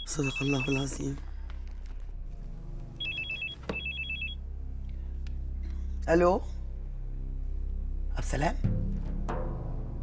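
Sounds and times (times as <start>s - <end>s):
phone ringing with electronic trill: 0.0s - 1.1s, 3.0s - 4.4s.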